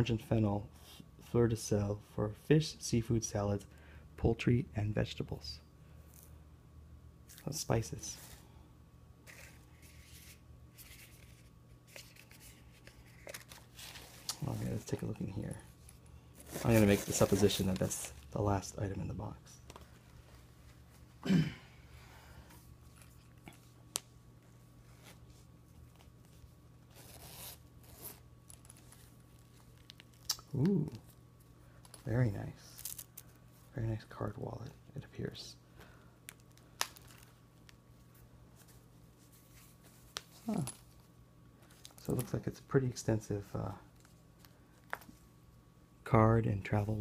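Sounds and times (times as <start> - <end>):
faint steady hum: 0.0 - 47.0
cardboard box and paper rustling: 16.4 - 18.2.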